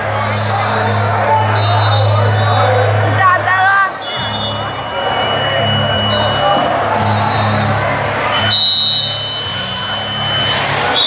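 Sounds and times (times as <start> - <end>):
crowd murmur: 0.0 - 11.0
high whistle blast: 4.0 - 11.0.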